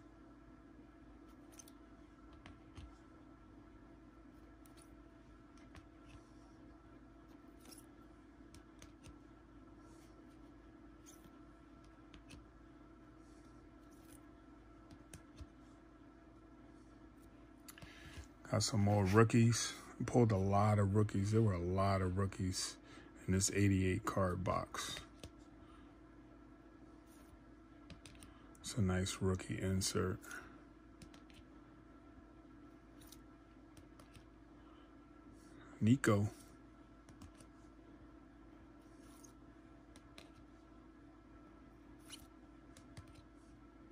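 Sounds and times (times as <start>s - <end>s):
steady low hum: 0.0s - 43.9s.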